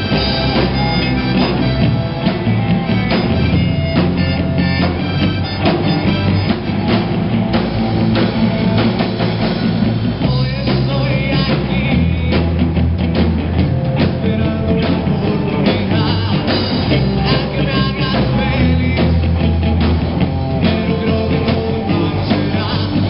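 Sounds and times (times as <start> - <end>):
rock band playing loudly: 0.0 - 23.0.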